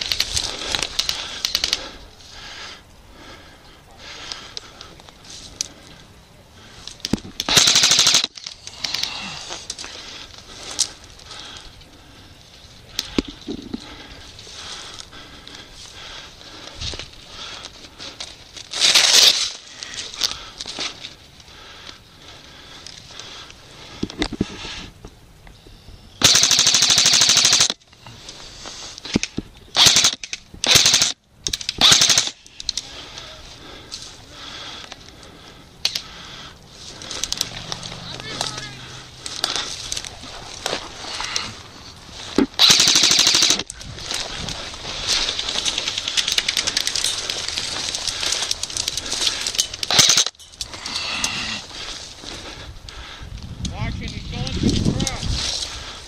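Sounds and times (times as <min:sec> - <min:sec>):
airsoft rifles firing bursts: 0:07.4 - 0:08.4, 0:26.2 - 0:27.8, 0:29.8 - 0:32.4, 0:42.6 - 0:43.7, 0:49.9 - 0:50.4.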